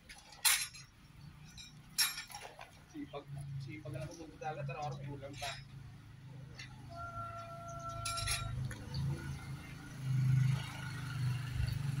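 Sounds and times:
tie wire and rebar clinking: 0.1 - 3.1, 3.8 - 5.8, 7.7 - 9.0.

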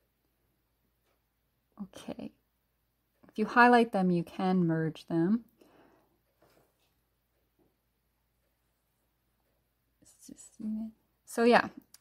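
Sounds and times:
person speaking: 10.0 - 12.0.

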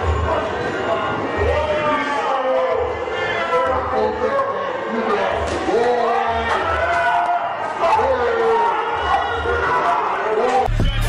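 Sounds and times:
low slow thudding beat: 10.7 - 11.0.

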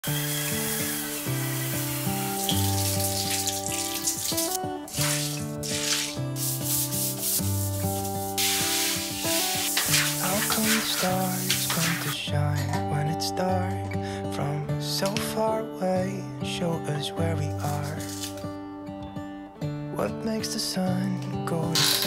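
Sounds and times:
water poured from a bucket: 0.0 - 12.2
water spraying from shower head: 0.0 - 12.2
background music with held chords: 0.0 - 21.7
scrub brush rubbing tiles: 0.2 - 12.2, 17.6 - 18.4.

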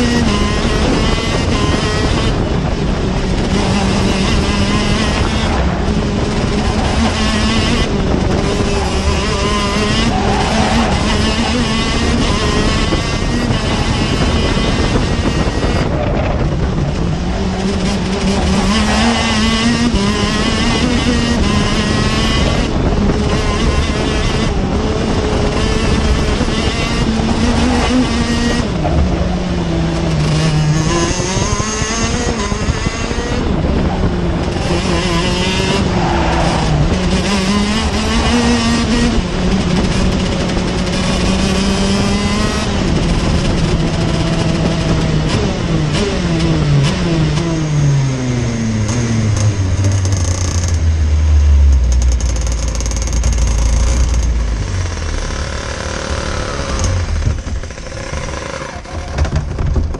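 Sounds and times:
kart engine revving: 0.0 - 59.9.

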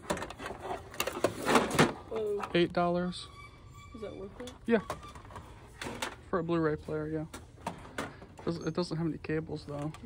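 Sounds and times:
plastic electronics clattering: 0.0 - 2.6, 7.3 - 8.6.

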